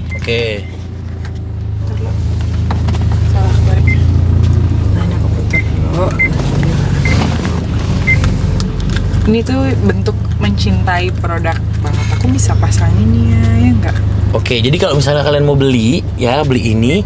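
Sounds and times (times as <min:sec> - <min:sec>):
car engine humming: 0:00.0 - 0:17.0.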